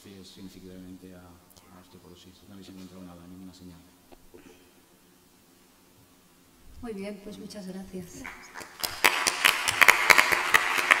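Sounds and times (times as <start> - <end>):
audience applauding: 8.4 - 11.0.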